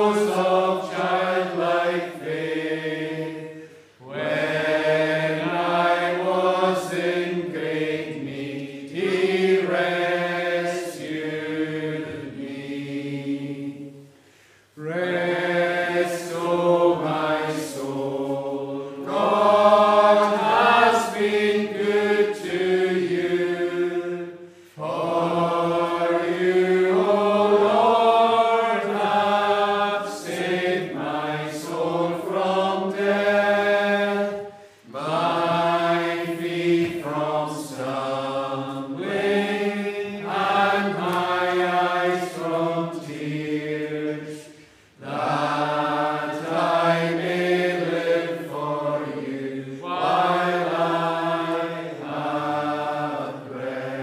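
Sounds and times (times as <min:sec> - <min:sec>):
congregation singing unaccompanied: 0:00.0 - 0:54.0.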